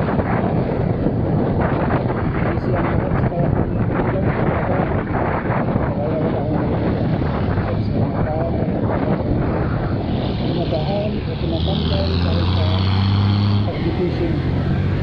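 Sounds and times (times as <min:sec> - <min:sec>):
bus engine low hum: 0:00.0 - 0:15.0
wind rushing over microphone: 0:00.0 - 0:15.0
motorcycle engine: 0:06.0 - 0:15.0.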